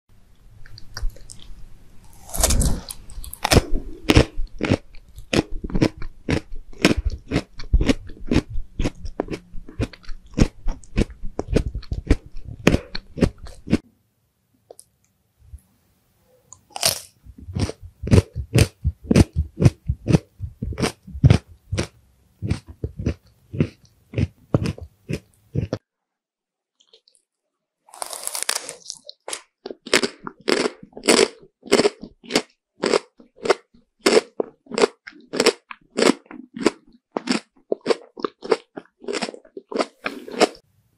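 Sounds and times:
jelly candy crunching: 0.6 - 13.8, 16.5 - 25.8, 27.9 - 40.6.

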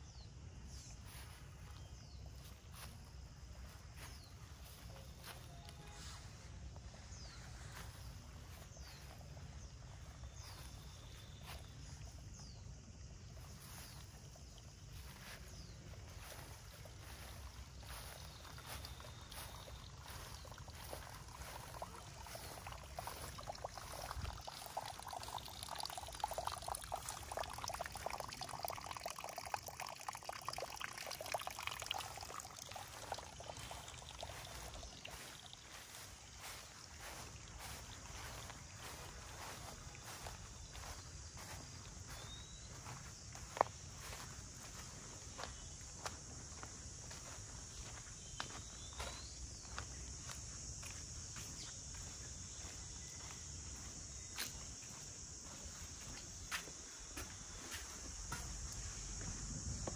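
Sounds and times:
bird chirp: 0.0 - 45.8, 47.2 - 54.6
water trickling into pond: 0.0 - 59.9.

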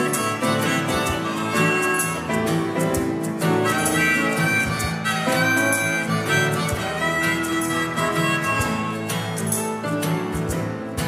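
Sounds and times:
acoustic guitar strumming: 0.0 - 11.0
harmonica melody: 0.0 - 11.0
piano: 0.0 - 11.0.

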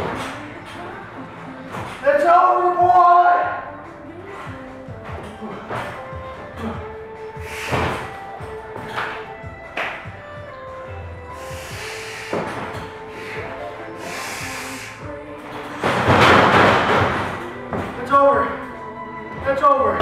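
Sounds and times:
music: 0.0 - 20.0
wrestlers thudding on ring canvas: 15.8 - 18.0.

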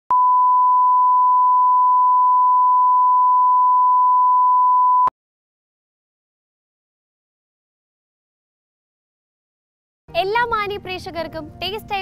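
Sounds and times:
steady reference tone beep: 0.1 - 5.1.

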